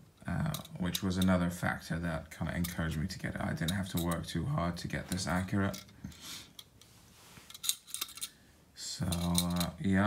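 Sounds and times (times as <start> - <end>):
metal hilt clicking: 7.5 - 8.4.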